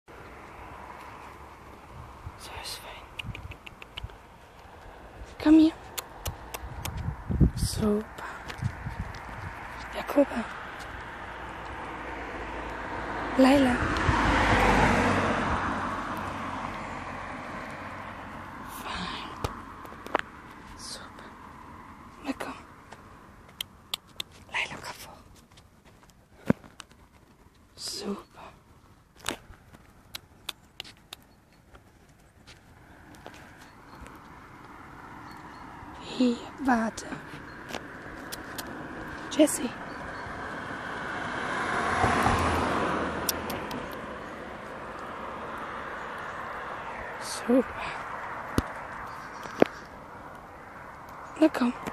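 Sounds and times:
car passing: 0.1s - 23.9s, 32.2s - 51.9s.

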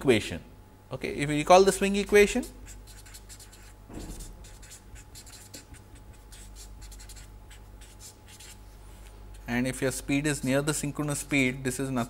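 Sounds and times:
low electrical hum: 0.0s - 12.0s
marker pen scratching on paper: 2.4s - 8.6s.

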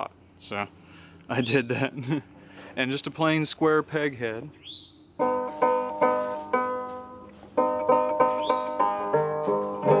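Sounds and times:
banjo plucked notes: 5.2s - 10.0s.

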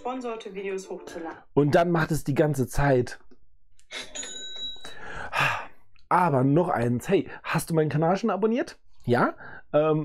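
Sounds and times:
bell-like ding: 4.1s - 5.0s.

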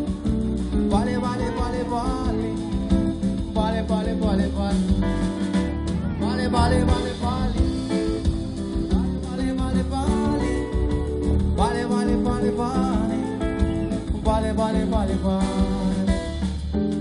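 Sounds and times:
live band playing dance music: 0.0s - 17.0s.

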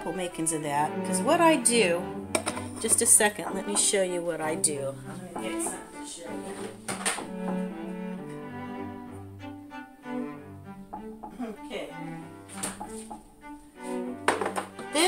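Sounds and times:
bowed strings music: 0.0s - 15.0s.

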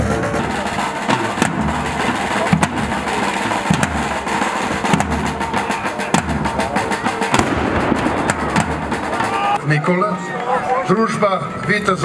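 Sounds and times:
black-powder gunshots: 7.3s - 9.3s.

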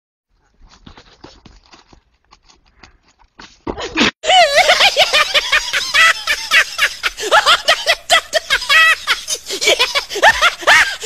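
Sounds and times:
hooves knocking on dirt: 0.4s - 4.1s.

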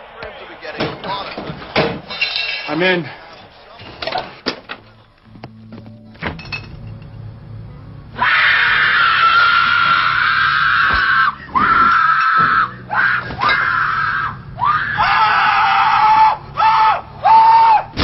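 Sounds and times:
person screaming: 8.2s - 17.8s.

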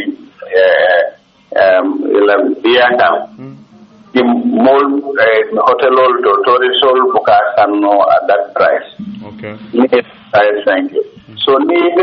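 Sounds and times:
man speaking: 0.0s - 12.0s
drawn-out wavering vocal sound: 3.1s - 4.4s, 9.0s - 9.9s.

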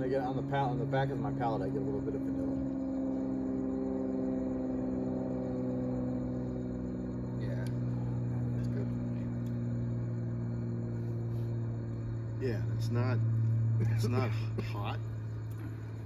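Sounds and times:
machine humming: 0.0s - 16.0s.

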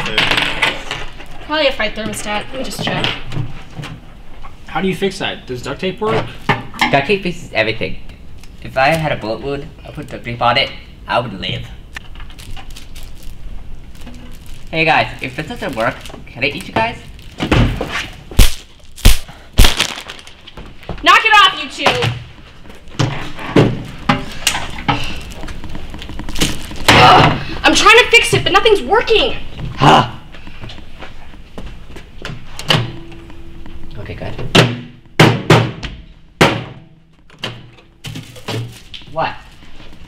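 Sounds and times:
loud bangs of striking: 18.4s - 20.3s, 34.5s - 37.0s
thuds and bangs on microwave oven: 34.5s - 38.7s.

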